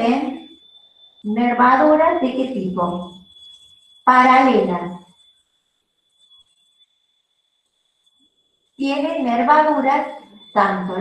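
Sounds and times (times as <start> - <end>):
faint high-pitched whine: 8.8 - 11.0.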